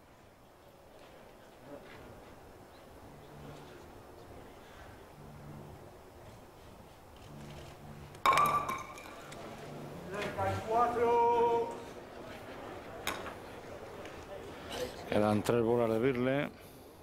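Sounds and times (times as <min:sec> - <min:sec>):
ball striking with ringing knock: 0:08.2 - 0:09.2
man shouting: 0:10.1 - 0:11.8.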